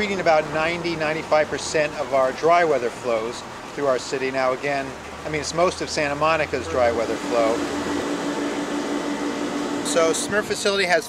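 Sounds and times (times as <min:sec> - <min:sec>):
machinery humming: 0:06.5 - 0:11.0.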